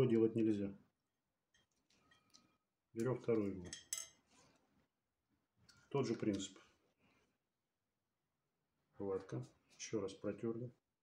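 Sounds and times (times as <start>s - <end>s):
soft plastic handling sounds: 5.6s - 7.4s, 9.0s - 10.1s.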